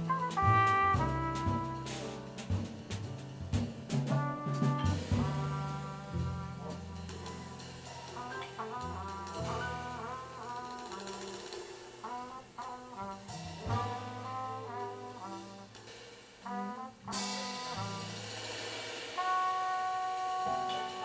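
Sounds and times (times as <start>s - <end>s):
double bass: 0.0s - 21.0s
drums: 0.0s - 21.0s
horn melody with bending notes: 0.0s - 21.0s
piano: 0.0s - 21.0s
drum crash: 0.1s - 12.5s.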